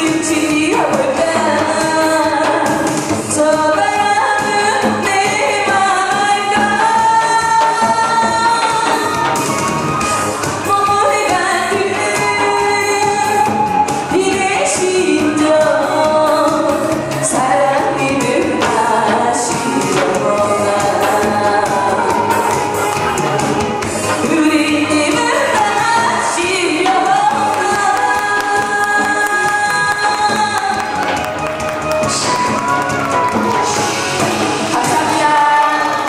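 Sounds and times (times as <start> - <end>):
woman singing into a microphone: 0.0 - 9.7, 10.5 - 31.3, 34.6 - 36.0
amplified backing music: 0.0 - 36.0
instrumental accompaniment: 0.0 - 36.0.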